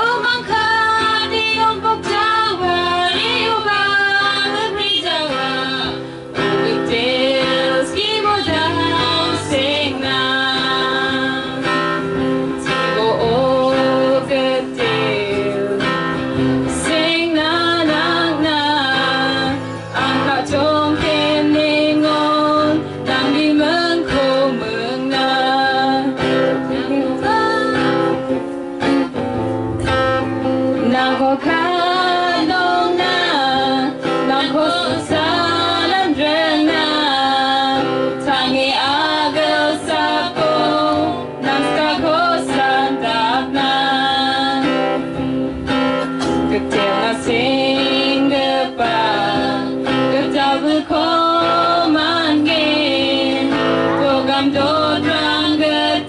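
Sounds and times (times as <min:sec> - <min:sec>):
acoustic guitar: 0:00.0 - 0:56.0
women singing: 0:00.0 - 0:56.0.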